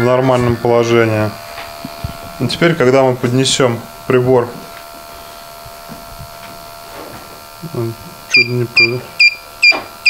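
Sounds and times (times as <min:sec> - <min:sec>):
electric pump buzzing: 0:00.0 - 0:10.0.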